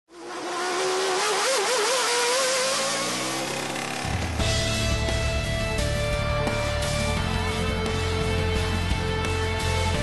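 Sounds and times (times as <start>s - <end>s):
racing engine at high revs: 0.1s - 8.7s.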